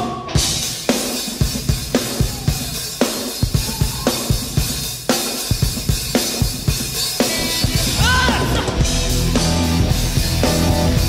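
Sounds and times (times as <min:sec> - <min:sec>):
drum kit rock beat: 0:00.0 - 0:11.0.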